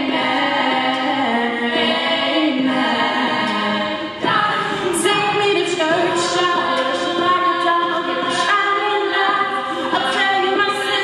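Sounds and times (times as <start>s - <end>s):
female a cappella singing: 0.0s - 11.0s
beatboxed percussion hits: 0.1s - 11.0s.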